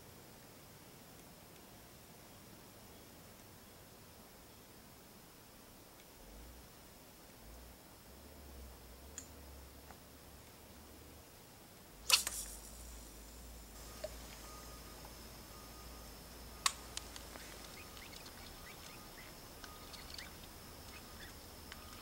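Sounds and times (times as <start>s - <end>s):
faint ticks: 5.9s - 6.6s, 9.0s - 10.8s, 11.7s - 22.0s.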